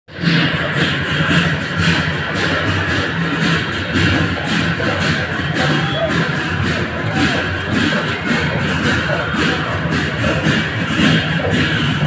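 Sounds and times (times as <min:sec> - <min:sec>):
loud fast drumming: 0:00.1 - 0:12.0.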